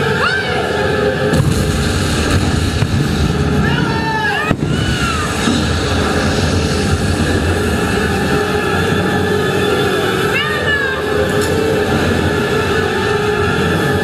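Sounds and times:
amplified voices: 0.0s - 14.0s
pyrotechnic bang: 1.3s - 8.0s.

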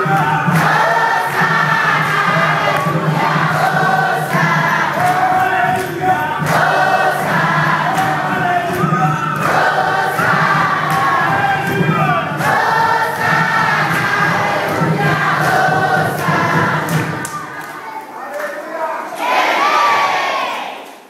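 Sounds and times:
congregation singing: 0.0s - 21.0s.

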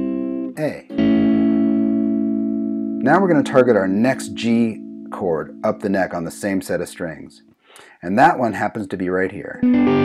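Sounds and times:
electric guitar chord ringing: 0.0s - 6.2s, 9.6s - 10.0s.

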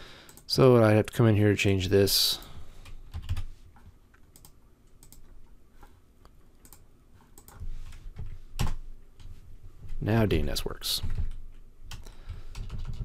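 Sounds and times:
typing on computer keyboard: 2.9s - 3.5s, 4.2s - 5.3s, 6.6s - 6.8s, 7.4s - 7.6s, 11.0s - 13.0s.

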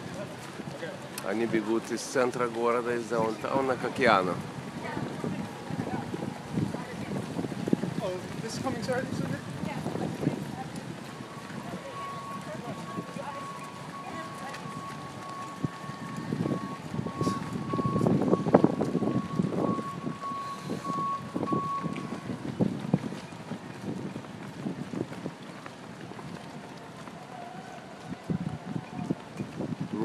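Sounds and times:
footsteps slapping on wet asphalt: 0.0s - 30.0s
wind on microphone: 3.8s - 27.1s, 27.8s - 30.0s.

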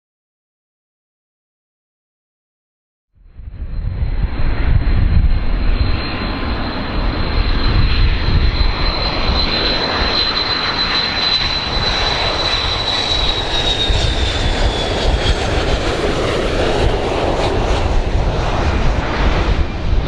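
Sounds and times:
jet airliner rumbling and whining: 3.2s - 20.0s.

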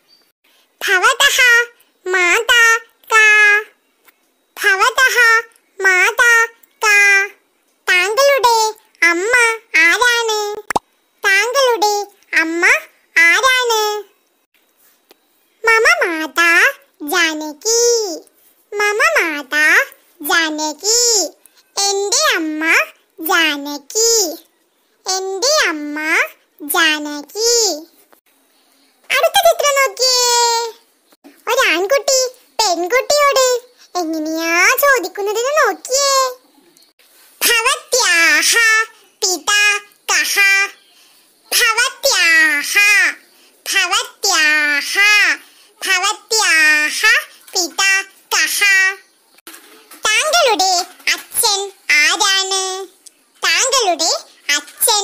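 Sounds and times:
child speaking: 0.8s - 3.8s, 4.6s - 14.1s, 15.6s - 27.9s, 29.1s - 30.8s, 31.4s - 36.5s, 37.4s - 49.1s, 49.9s - 55.0s.

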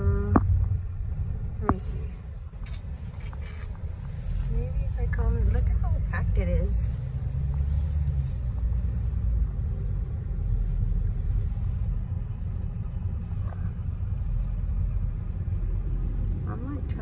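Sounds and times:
car engine: 0.0s - 17.0s
road noise: 0.0s - 17.0s.

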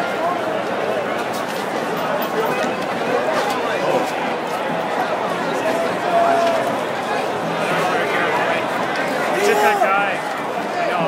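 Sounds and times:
crowd voices talking and calling: 0.0s - 11.0s.

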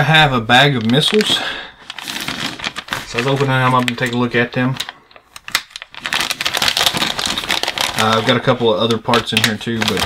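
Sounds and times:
plastic bag crinkling: 0.4s - 10.0s.

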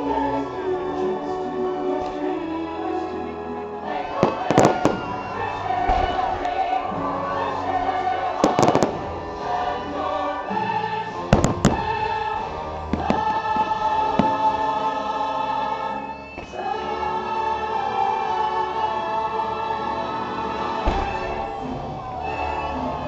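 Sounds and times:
choir holding long notes: 0.0s - 23.0s
firework bangs: 4.1s - 6.8s, 8.4s - 9.1s, 11.3s - 12.0s, 20.8s - 22.3s.

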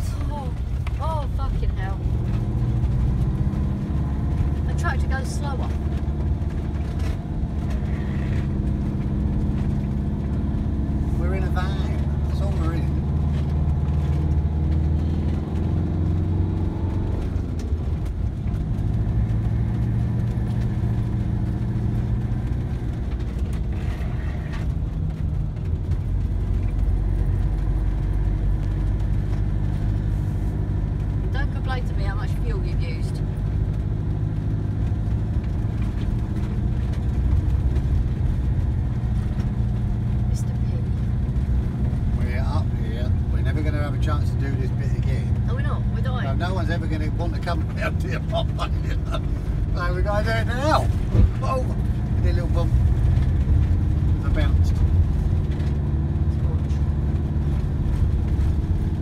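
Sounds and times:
road noise: 0.0s - 59.0s
van engine: 0.0s - 59.0s.

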